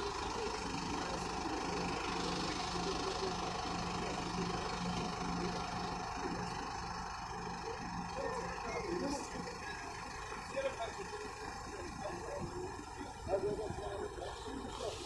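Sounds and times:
engine idling: 0.0s - 15.0s.

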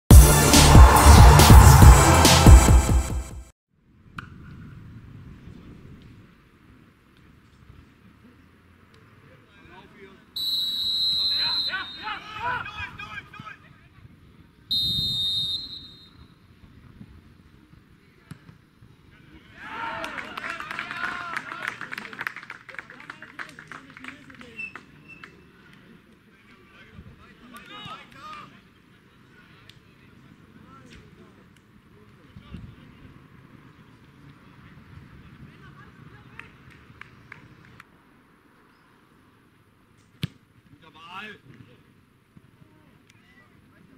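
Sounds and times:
referee's whistle blast: 10.4s - 12.3s, 14.7s - 16.2s.

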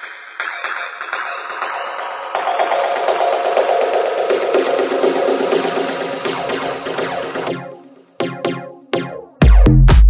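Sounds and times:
filtered techno music: 0.0s - 10.0s.

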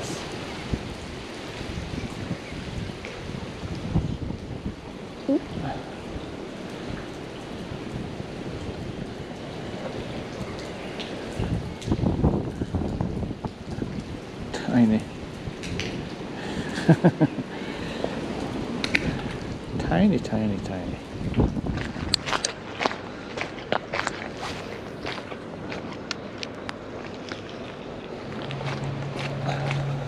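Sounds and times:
rain falling on water: 0.0s - 30.0s
person laughing: 16.7s - 17.7s.

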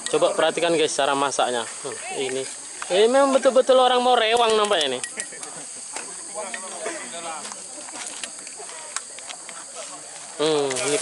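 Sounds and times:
steady high hiss: 0.0s - 11.0s
faint background voices: 5.1s - 11.0s.

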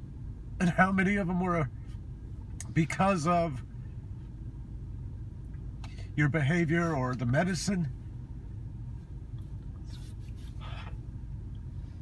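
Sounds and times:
car cabin rumble: 0.0s - 12.0s
man breathing: 10.5s - 11.1s.

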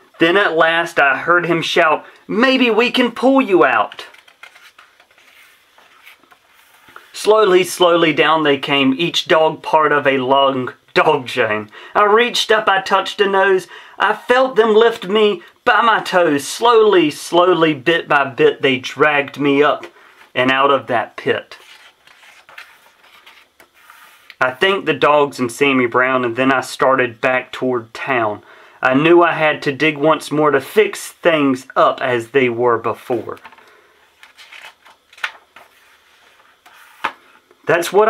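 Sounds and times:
paper rustling: 3.6s - 7.2s, 21.5s - 24.4s, 33.1s - 37.3s
book page turning: 3.7s - 7.1s, 21.5s - 24.4s, 33.0s - 37.3s.

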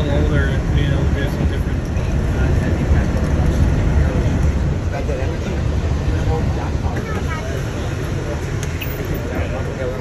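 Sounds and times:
monorail running rumble: 0.0s - 10.0s.

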